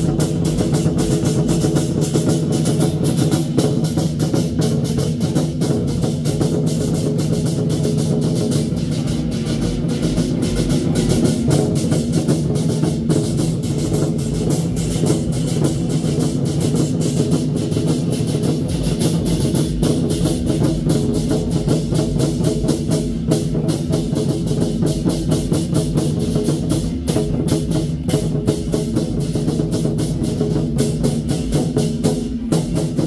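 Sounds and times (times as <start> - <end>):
war drums beaten fast: 0.0 - 33.0.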